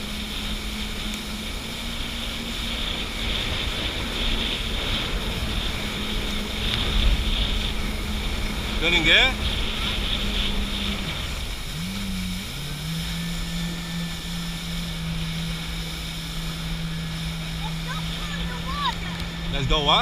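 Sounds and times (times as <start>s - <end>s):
hissing water spray: 0.0s - 20.0s
jet ski engine droning: 0.0s - 20.0s
wind: 0.0s - 20.0s.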